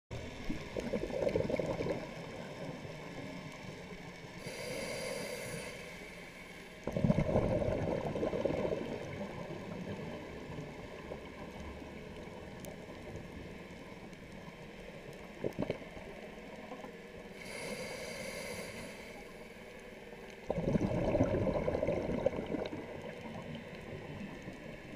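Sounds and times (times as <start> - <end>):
exhaled bubbles gurgling: 0.2 - 3.1, 6.8 - 13.1, 20.3 - 24.9
hissing regulator inhale: 4.4 - 6.8, 17.4 - 19.6.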